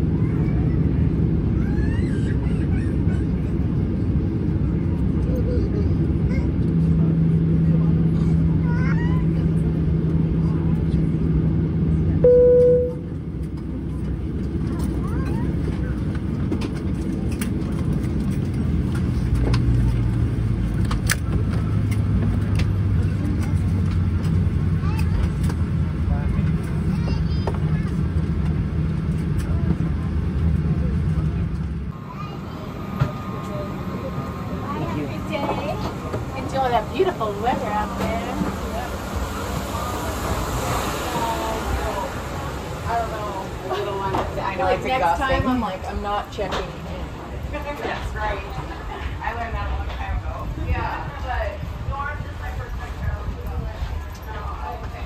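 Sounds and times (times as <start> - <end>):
aircraft engines idling rumble: 0.0 - 55.0
short cabin tone: 12.2 - 13.2.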